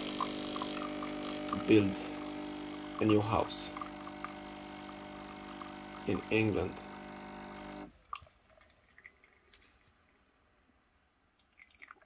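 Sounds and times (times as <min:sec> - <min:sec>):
coffee machine pump humming: 0:00.0 - 0:07.9.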